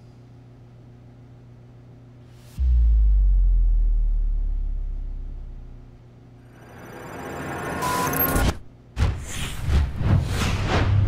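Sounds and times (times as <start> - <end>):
deep boom: 2.6 - 6.0.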